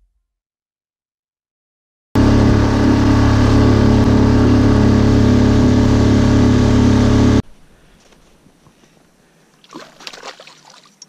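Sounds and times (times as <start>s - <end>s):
engine running steadily: 2.2s - 7.4s.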